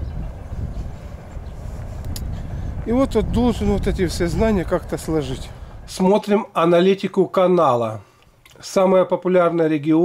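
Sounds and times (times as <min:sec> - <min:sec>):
low outdoor rumble: 0:00.0 - 0:06.9
man speaking: 0:02.9 - 0:10.0.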